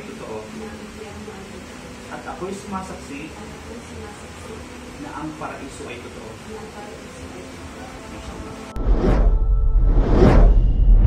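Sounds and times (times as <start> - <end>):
whoosh sound effects: 8.8 - 11.0.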